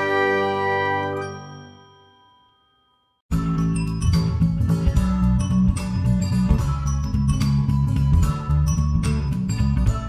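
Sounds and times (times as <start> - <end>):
bell-like chime chord: 0.8 - 10.0.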